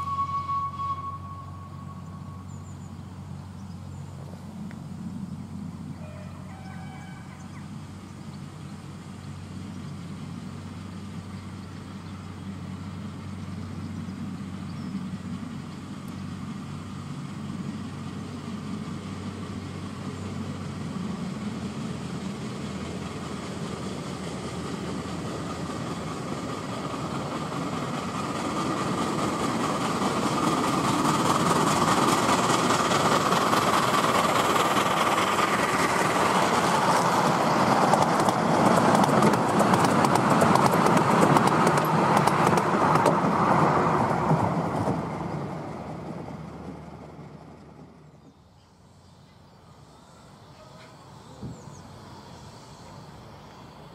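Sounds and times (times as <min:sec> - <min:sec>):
steam locomotive exhaust beats: 0:00.0 - 0:53.9
wheels on rails: 0:17.5 - 0:53.9.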